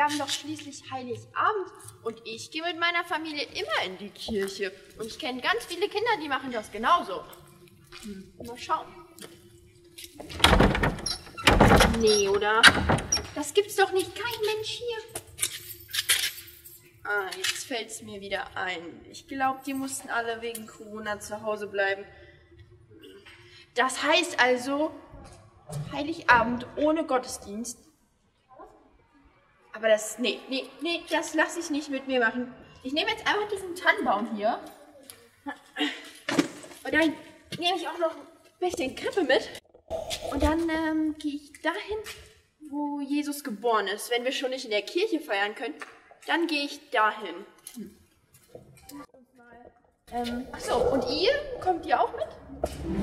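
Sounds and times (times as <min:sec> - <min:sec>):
wooden door rattling: 0:10.2 - 0:13.4.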